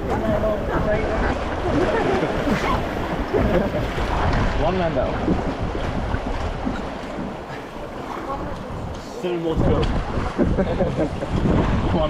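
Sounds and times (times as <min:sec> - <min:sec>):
river water rushing: 0:00.0 - 0:12.0
wind buffeting microphone: 0:00.0 - 0:12.0.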